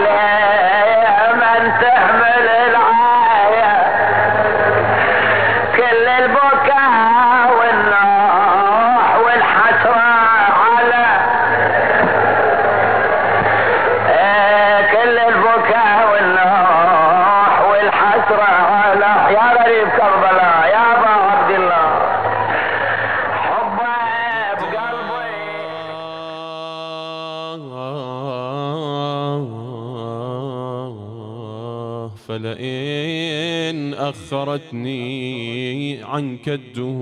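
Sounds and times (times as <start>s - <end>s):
person chanting slow melody: 0.0s - 13.1s, 13.8s - 22.2s, 23.5s - 37.0s.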